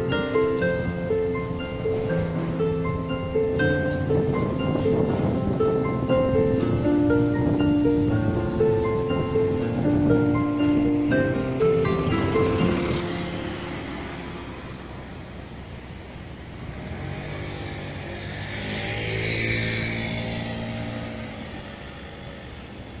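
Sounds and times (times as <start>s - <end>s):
mallet percussion notes: 0.0s - 14.4s
vehicle engine passing by: 0.0s - 23.0s.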